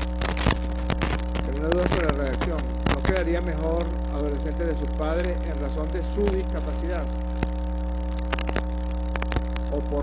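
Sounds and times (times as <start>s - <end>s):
sharp clicks: 0.0s - 3.9s, 7.2s - 9.8s
electrical mains hum: 0.0s - 10.0s.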